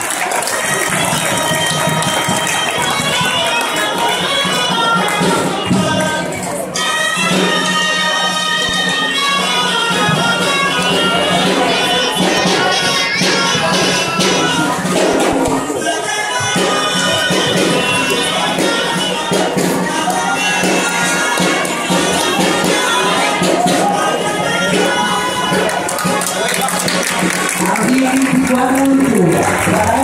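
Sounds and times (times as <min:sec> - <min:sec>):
murmuring crowd: 0:00.0 - 0:30.0
percussion beats: 0:00.0 - 0:30.0
reed pipes playing melody: 0:00.3 - 0:29.7.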